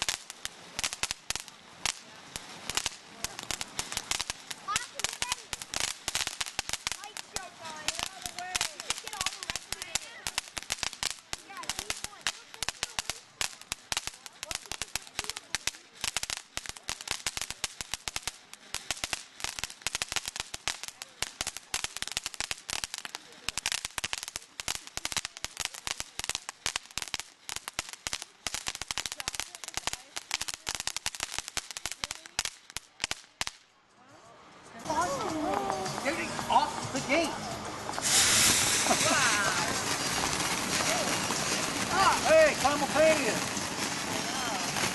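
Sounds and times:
firework fountain crackling: 0.0s - 44.9s.

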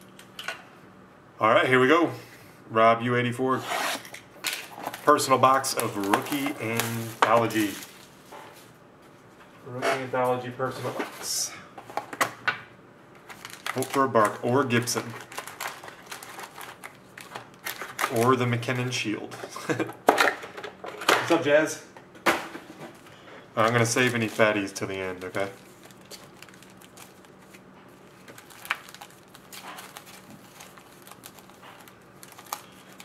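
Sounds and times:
foil card packs crinkling: 4.4s - 8.2s, 13.2s - 19.0s, 23.0s - 33.0s.

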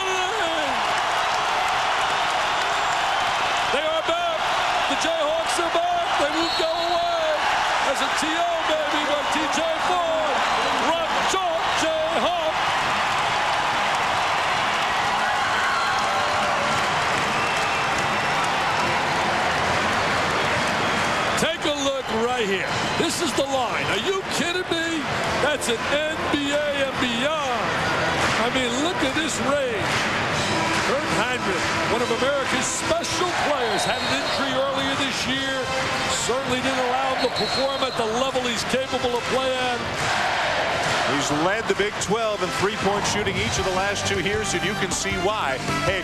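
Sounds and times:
crowd cheering: 0.0s - 46.0s
whoops: 12.4s - 19.6s.

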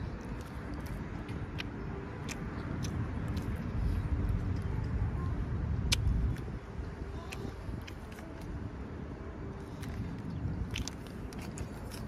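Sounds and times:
mouth chewing food: 0.0s - 5.0s, 5.6s - 8.7s, 9.5s - 12.0s.

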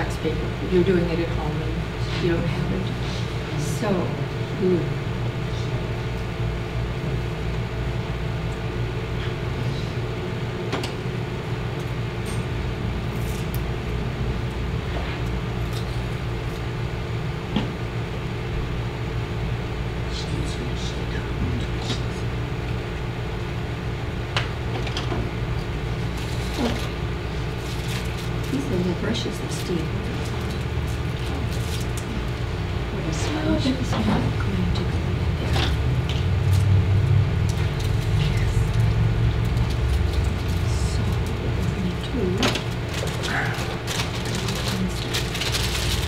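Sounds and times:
low room hum: 0.0s - 46.0s.

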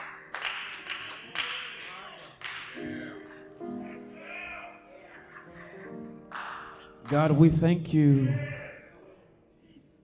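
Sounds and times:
rhythmic hand clapping: 0.0s - 3.6s, 6.2s - 7.6s.

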